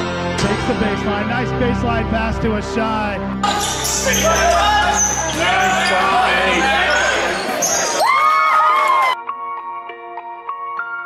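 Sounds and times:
many voices: 0:03.4 - 0:08.0.

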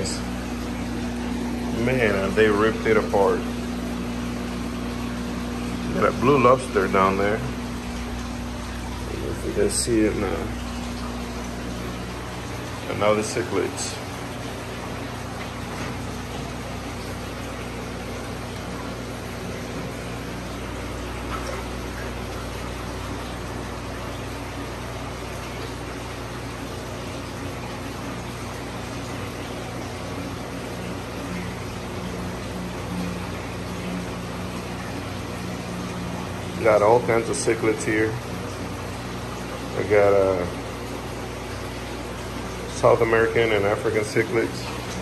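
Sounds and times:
aquarium pumps running: 0:00.0 - 0:45.0
constant low hum: 0:00.0 - 0:45.0
electric fans whirring: 0:00.0 - 0:45.0.

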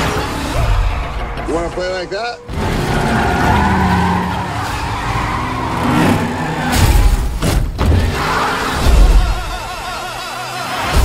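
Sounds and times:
car engines running: 0:02.4 - 0:09.8
tyres squealing: 0:02.5 - 0:07.3.

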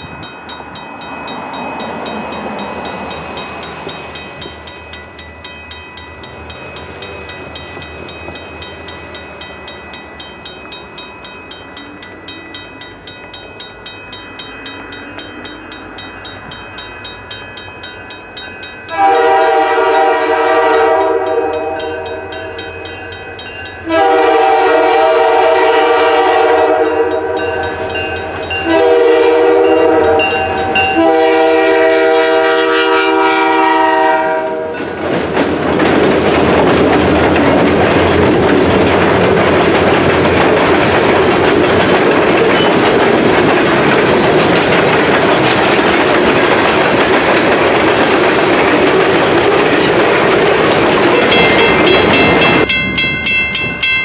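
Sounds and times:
crossing bell ringing: 0:00.0 - 0:35.2, 0:36.2 - 0:54.0
freight train rolling past: 0:00.0 - 0:54.0
locomotive air horn: 0:18.9 - 0:22.6, 0:23.8 - 0:27.6, 0:28.6 - 0:34.8.

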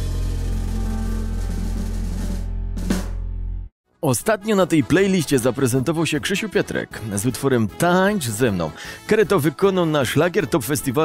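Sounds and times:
deep bass note: 0:00.0 - 0:03.7.

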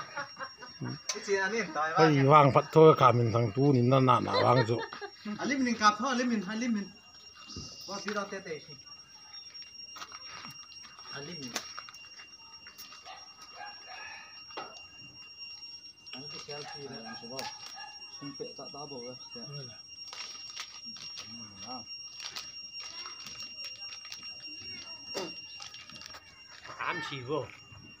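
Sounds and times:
high-pitched whine: 0:00.0 - 0:28.0
people talking: 0:00.8 - 0:09.2, 0:16.2 - 0:17.5.

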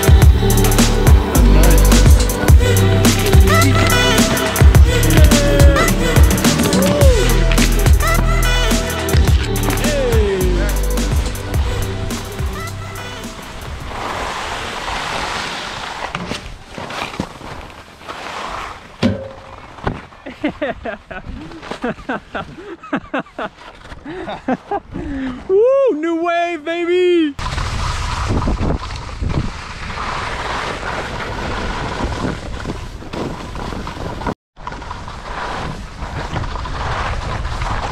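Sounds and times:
background music: 0:00.0 - 0:13.6
skis sliding over packed snow: 0:12.2 - 0:25.6, 0:27.4 - 0:37.9
wind rushing over microphone: 0:27.4 - 0:34.4.

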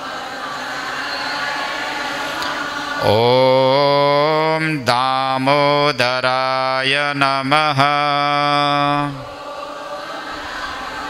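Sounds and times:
congregation chanting: 0:00.0 - 0:11.0
man singing into microphone: 0:03.0 - 0:09.3.

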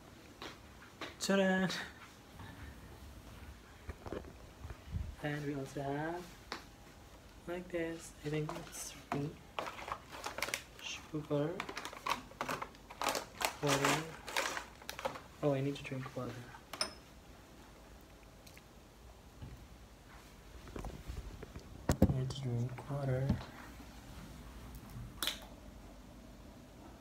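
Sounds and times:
plastic packaging crinkling: 0:08.4 - 0:16.4.

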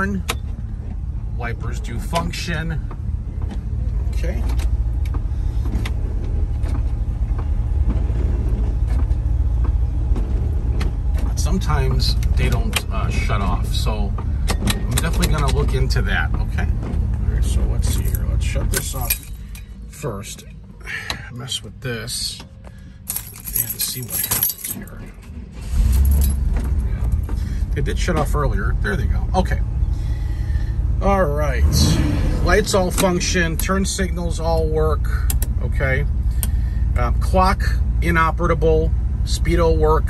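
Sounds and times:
engine idling: 0:00.0 - 0:40.0
windshield wipers clicking: 0:13.6 - 0:19.1.

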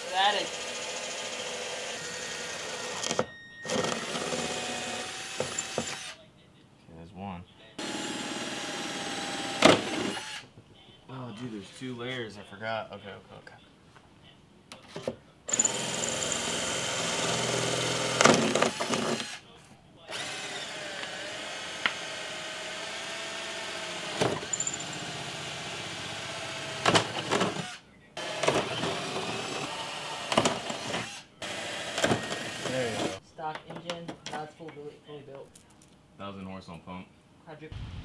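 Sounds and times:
cordless drill drilling: 0:00.0 - 0:06.2, 0:07.8 - 0:10.4, 0:15.5 - 0:19.4, 0:20.1 - 0:33.2.

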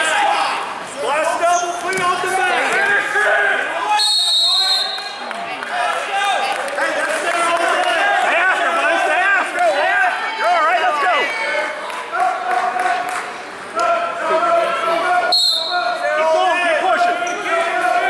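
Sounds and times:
referee's whistle: 0:03.9 - 0:05.2, 0:15.3 - 0:16.0.

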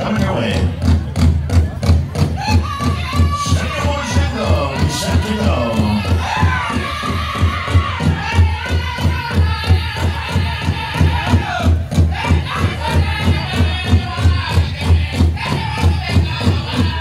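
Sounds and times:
big drum fast steady beat: 0:00.0 - 0:17.0
high-pitched voices singing in unison: 0:02.5 - 0:17.0.

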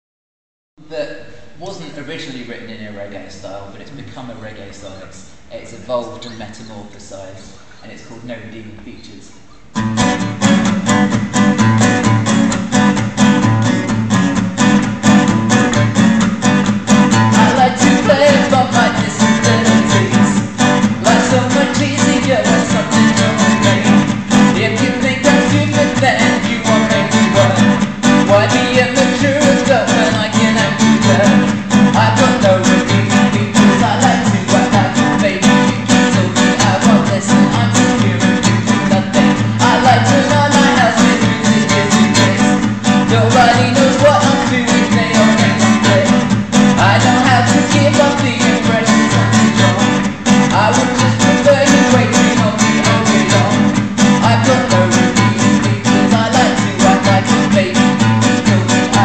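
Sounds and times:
acoustic guitar strumming reggae rhythm: 0:09.4 - 0:59.0
man singing: 0:16.9 - 0:59.0.

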